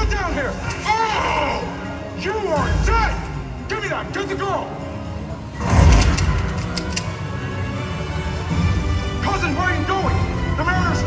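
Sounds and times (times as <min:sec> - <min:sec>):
sharp cracks: 0:05.6 - 0:07.1.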